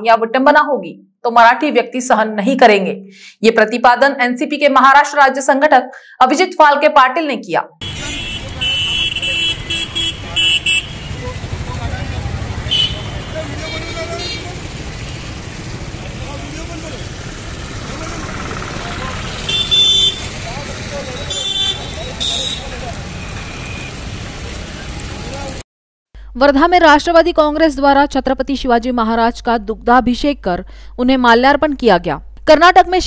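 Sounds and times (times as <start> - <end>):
vehicle horns beeping: 7.8 - 14.6, 19.1 - 20.4, 21.0 - 24.0
traffic rumble: 7.8 - 25.6.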